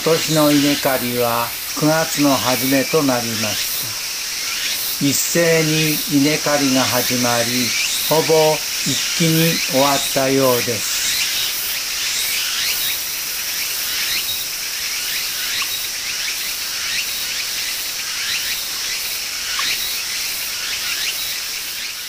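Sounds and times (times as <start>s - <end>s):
insects chirring: 0.0s - 22.0s.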